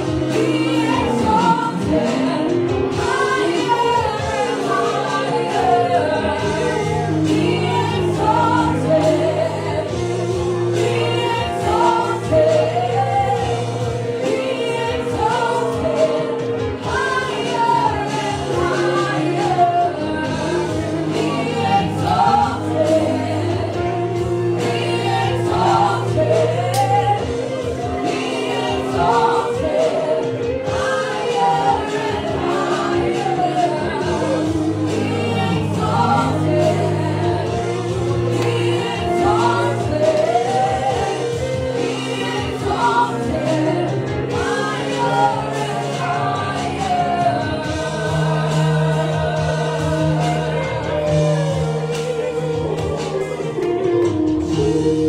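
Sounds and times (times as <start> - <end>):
congregation singing worship song: 0.0 - 55.0.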